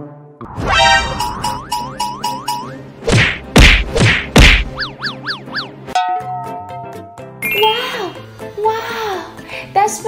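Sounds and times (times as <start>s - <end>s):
background music: 0.0s - 10.0s
loud cartoon hits: 3.1s - 4.8s.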